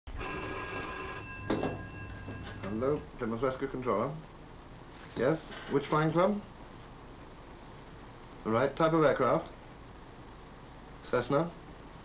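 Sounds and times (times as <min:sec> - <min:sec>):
telephone bell ringing: 0:00.1 - 0:03.1.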